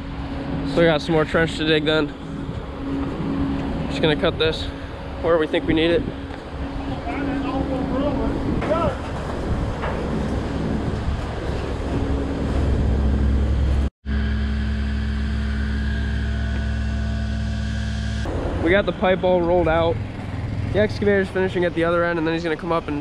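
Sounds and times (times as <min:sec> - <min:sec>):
engine running steadily: 0:00.0 - 0:23.0
open-air noise: 0:00.0 - 0:23.0.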